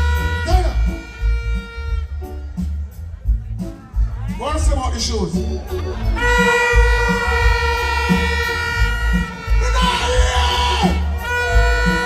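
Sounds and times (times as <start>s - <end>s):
heavy bass beat: 0.0s - 12.0s
live reggae band music: 0.0s - 12.0s.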